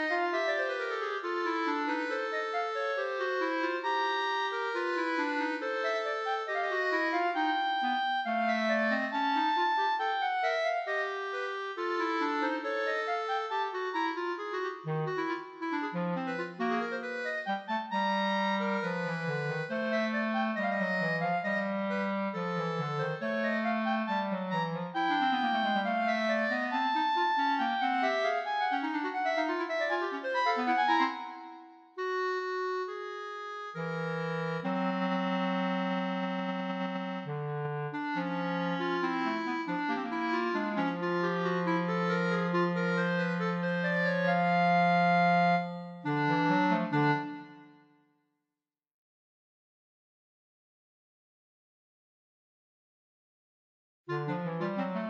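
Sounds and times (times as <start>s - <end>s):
two clarinets playing: 0.0s - 47.8s.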